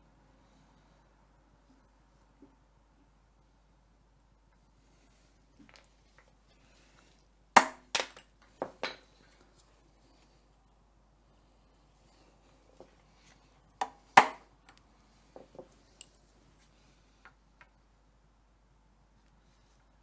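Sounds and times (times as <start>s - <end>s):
metal tools clinking: 5.6s - 6.3s.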